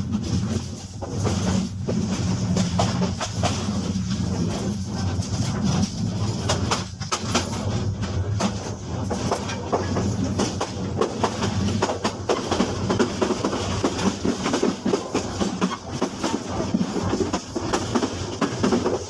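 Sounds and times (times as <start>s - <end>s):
train running on rails: 0.0s - 19.0s
train wheel clicks: 0.0s - 19.0s.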